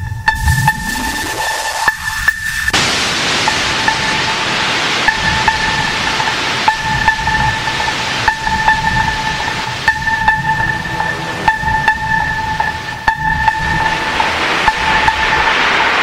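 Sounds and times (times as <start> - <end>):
high synth note: 0.0 - 15.8
hardstyle electronic music: 0.0 - 16.0
hiss-like noise sweep: 0.0 - 16.0.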